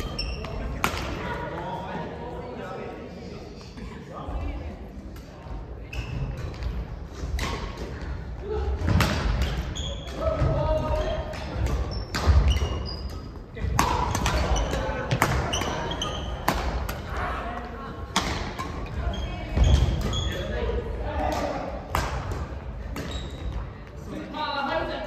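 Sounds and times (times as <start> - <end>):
shoe squeaks: 0.0 - 0.6, 5.8 - 6.4, 9.7 - 10.2, 11.9 - 13.4, 14.4 - 16.5, 18.8 - 20.6, 23.0 - 23.7.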